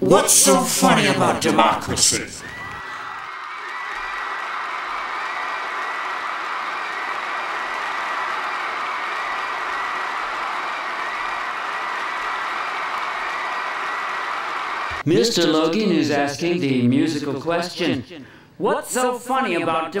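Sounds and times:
crowd applause: 0.5s - 15.0s.

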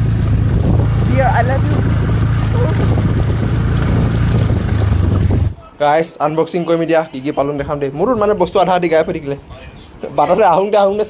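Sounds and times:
motorcycle engine running: 0.0s - 5.6s
wind noise on microphone: 0.0s - 5.6s, 7.4s - 10.0s.

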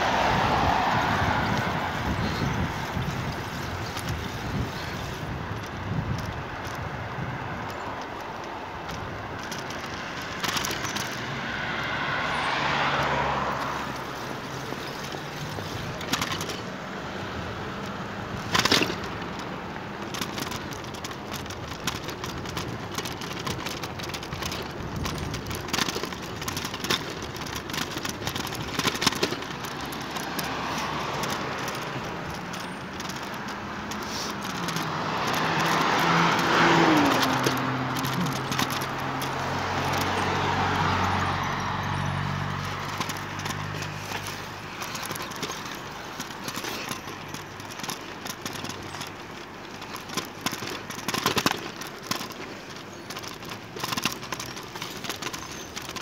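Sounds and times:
cars passing: 0.0s - 56.0s
wind and road noise: 0.0s - 56.0s
sharp clicks and knocks: 7.6s - 11.4s, 12.9s - 16.8s, 17.8s - 56.0s.

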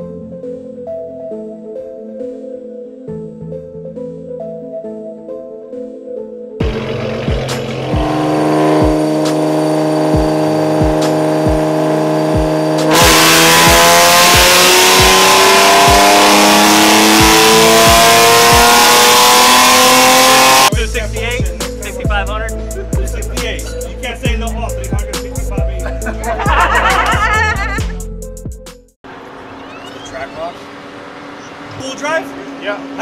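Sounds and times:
background music with steady beat: 0.0s - 29.0s
car engine revving on dyno: 6.6s - 20.7s.

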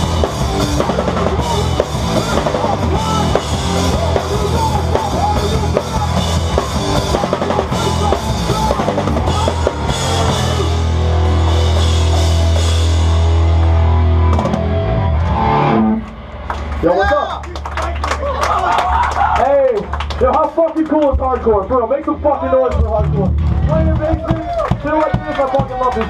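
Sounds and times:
punk band playing: 0.0s - 26.0s.

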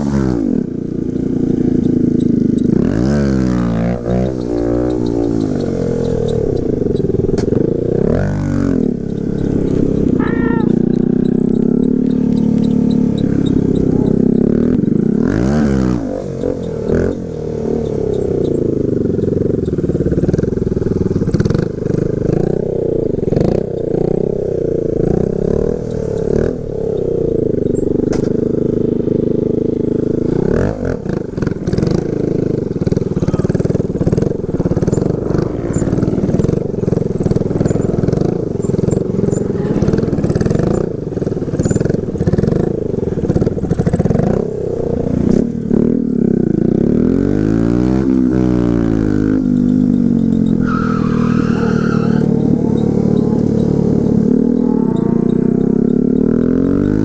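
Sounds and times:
small motorcycle engine revving: 0.0s - 57.0s.

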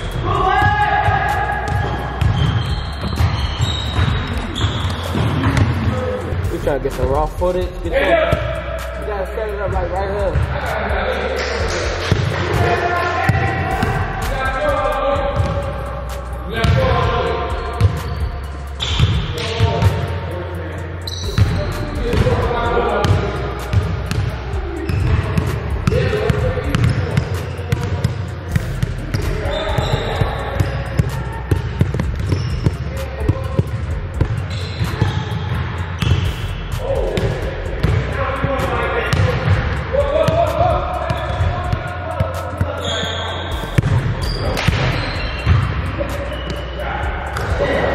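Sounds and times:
voices: 0.0s - 47.9s
basketballs bouncing on wooden floor: 1.6s - 6.0s, 12.0s - 14.0s, 15.2s - 15.6s, 16.6s - 17.1s, 18.9s - 20.0s, 21.2s - 22.4s, 24.9s - 36.3s, 37.1s - 38.1s, 43.6s - 45.8s.

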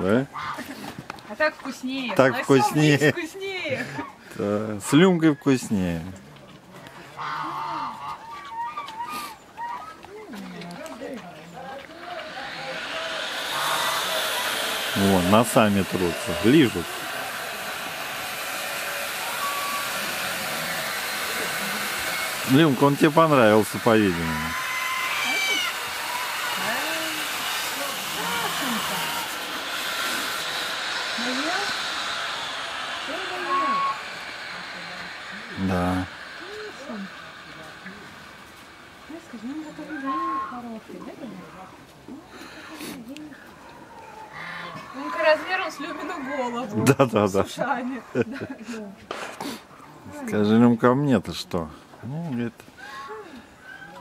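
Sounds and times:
steady hissing noise: 10.6s - 54.0s
faint rising and falling whines: 10.8s - 47.2s.

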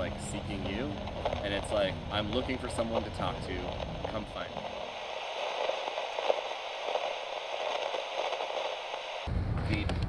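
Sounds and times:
radio static crackles: 0.0s - 10.0s
radio static hiss: 0.0s - 10.0s.

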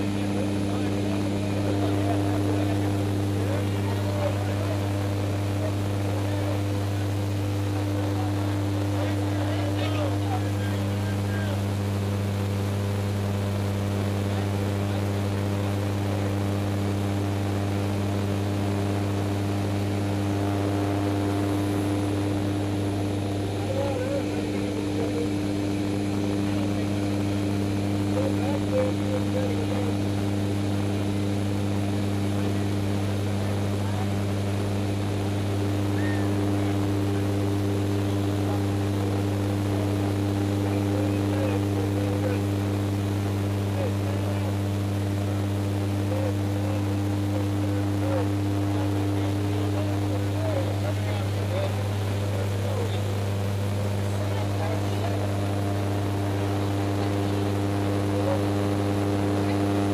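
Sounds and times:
propeller plane engines droning: 18.4s - 44.8s.

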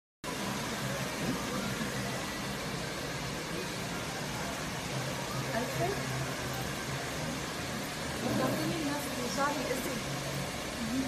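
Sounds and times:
faint murmur of distant voices: 0.2s - 11.0s
steady background hiss: 0.3s - 11.0s.

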